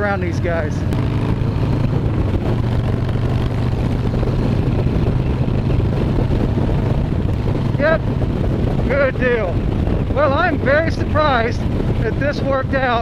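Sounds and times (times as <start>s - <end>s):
motorcycle engine running: 0.0s - 13.0s
wind noise on microphone: 0.0s - 13.0s.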